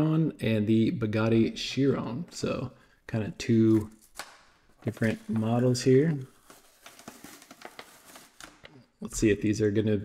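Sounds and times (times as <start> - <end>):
plastic packaging crinkling: 4.8 - 8.8
cardboard tearing: 6.4 - 8.6.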